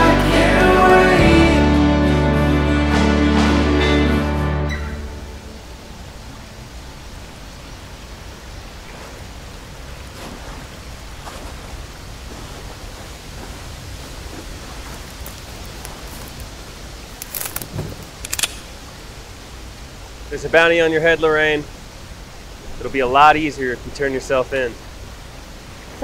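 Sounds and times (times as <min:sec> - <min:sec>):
outdoor ambient hiss: 0:04.6 - 0:26.0.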